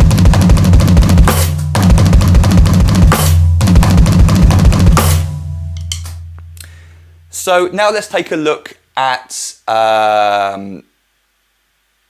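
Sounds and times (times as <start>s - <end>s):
electronic cymbal and bass drum: 0.0s - 7.4s.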